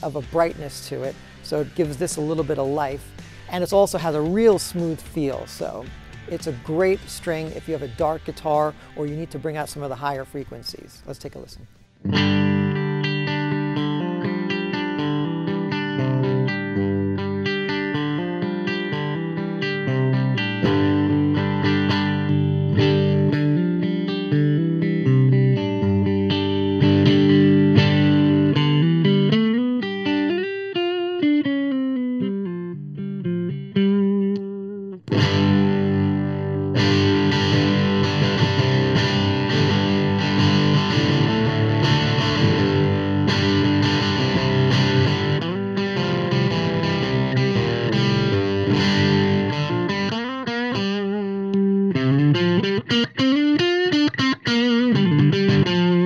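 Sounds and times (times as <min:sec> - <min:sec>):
distorted electric guitar: 0:00.0 - 0:56.0.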